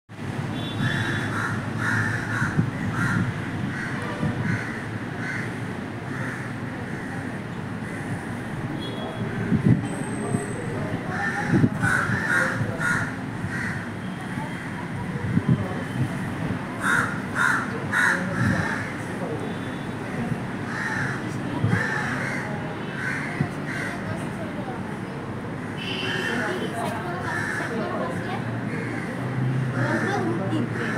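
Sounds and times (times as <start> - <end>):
crows cawing: 0.8 - 8.3, 11.1 - 13.9, 16.8 - 19.0, 20.1 - 24.2, 27.2 - 28.1, 28.7 - 30.9.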